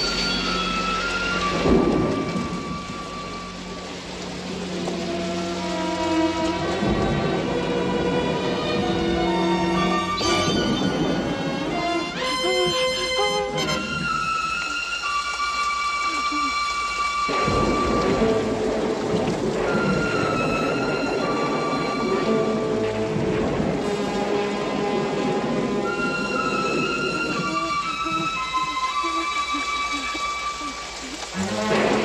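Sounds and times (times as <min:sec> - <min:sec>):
thunder rumble: 0:00.0 - 0:14.8, 0:17.3 - 0:32.0
film score long held notes: 0:00.0 - 0:32.0
steady rain: 0:00.0 - 0:32.0.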